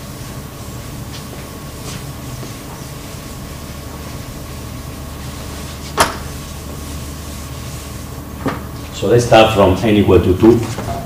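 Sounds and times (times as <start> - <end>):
eraser wiping chalkboard: 0.0 - 11.0
room hum: 0.0 - 11.0.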